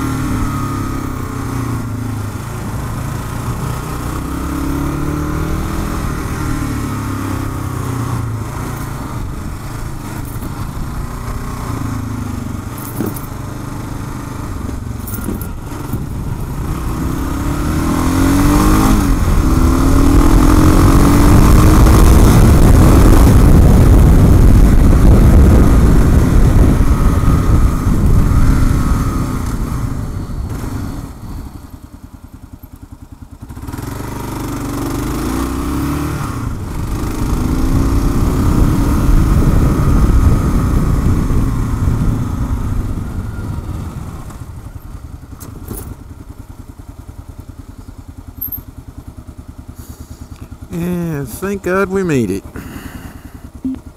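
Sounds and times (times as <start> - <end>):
motorcycle engine accelerating: 0.0 - 53.9.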